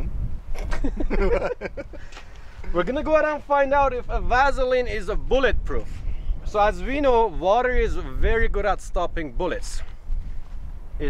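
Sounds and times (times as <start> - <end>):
men laughing heartily: 0.6 - 2.3.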